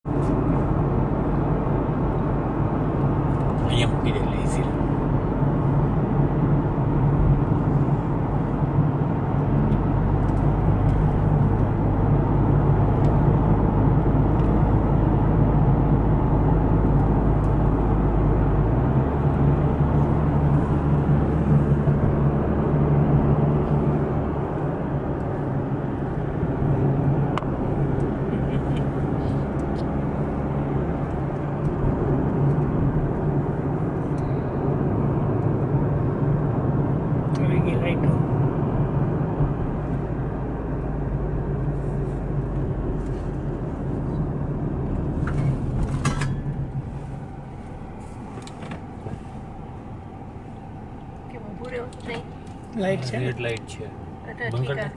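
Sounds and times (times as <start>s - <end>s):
car cabin engine and tyre rumble: 0.0s - 54.9s.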